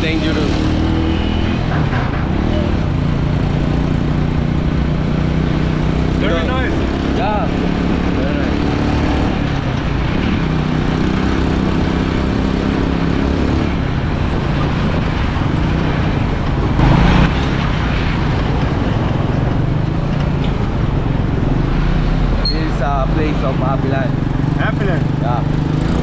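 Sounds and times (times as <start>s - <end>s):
road and wind noise: 0.0s - 26.0s.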